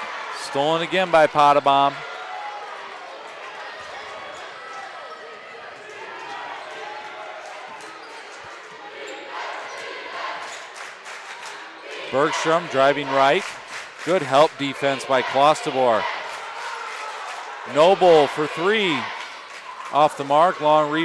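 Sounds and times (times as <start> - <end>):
murmur of spectators chatter: 0.0 - 21.0.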